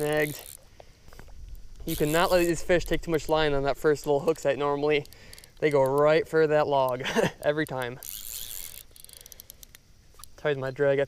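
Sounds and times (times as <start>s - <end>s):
fly reel drag clicking: 0.0s - 10.4s.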